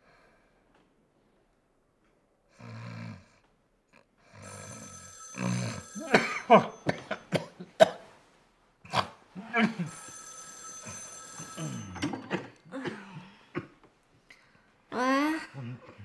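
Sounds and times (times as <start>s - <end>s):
man snoring: 2.5s - 3.4s
telephone ringing: 4.4s - 7.3s, 9.7s - 12.6s.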